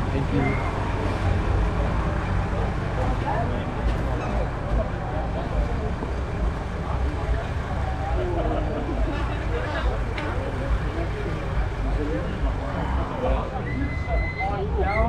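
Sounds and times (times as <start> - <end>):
overlapping chatter: 0.0 - 15.0.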